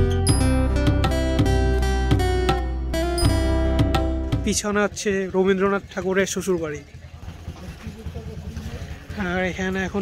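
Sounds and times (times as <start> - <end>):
motorcycle engine idling: 3.2 - 10.0.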